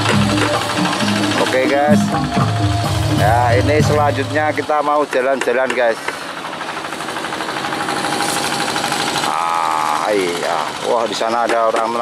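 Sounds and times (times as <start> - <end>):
small engine knocking steadily: 0.0 - 12.0.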